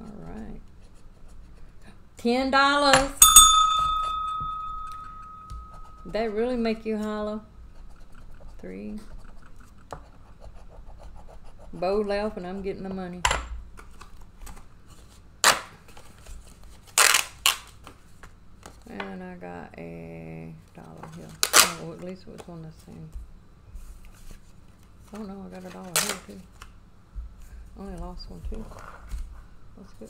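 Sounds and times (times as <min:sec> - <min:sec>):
small bell ringing: 0:03.2 - 0:06.2
faint paper rustling: 0:20.7 - 0:29.6.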